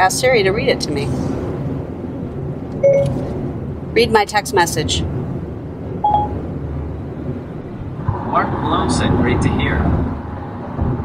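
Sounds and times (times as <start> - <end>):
road and engine noise in car: 0.0 - 11.0
short electronic tone: 2.8 - 3.4, 6.1 - 6.4.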